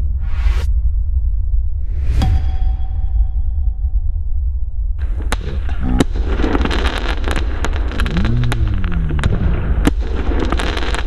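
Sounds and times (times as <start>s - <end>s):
low rumble: 0.0s - 11.0s
firework crackling: 5.0s - 11.0s.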